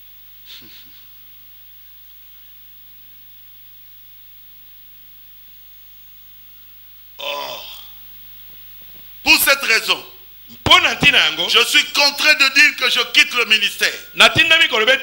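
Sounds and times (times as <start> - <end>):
low electrical hum: 0.0 - 15.0
short vocal grunt: 7.2 - 8.0.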